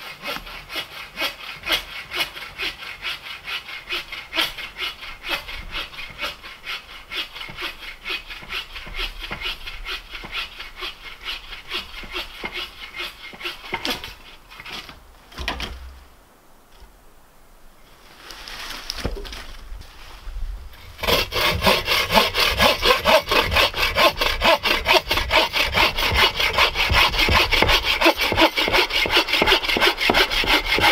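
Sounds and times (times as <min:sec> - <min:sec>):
hand saw cutting wood: 0:00.0 - 0:15.8, 0:20.9 - 0:30.9.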